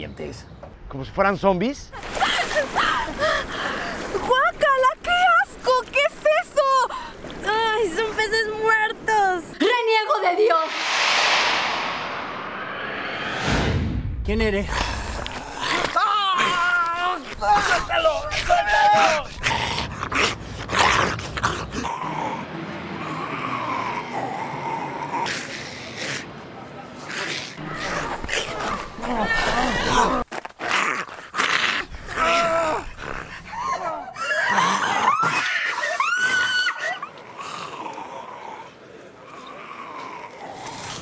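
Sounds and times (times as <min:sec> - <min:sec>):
people snarling and growling: 0:27.1 - 0:36.0.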